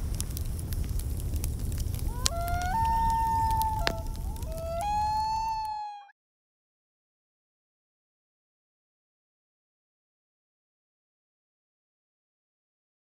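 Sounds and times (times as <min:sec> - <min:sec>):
sharp pops: 0:00.0 - 0:04.9
wood fire crackling: 0:00.0 - 0:06.0.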